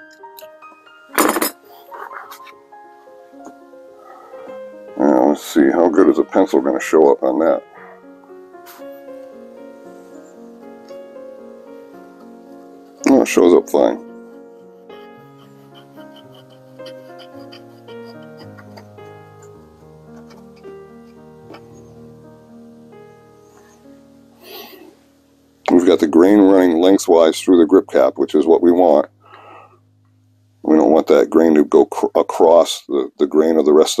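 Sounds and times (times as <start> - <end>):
background music: 0.0 - 34.0.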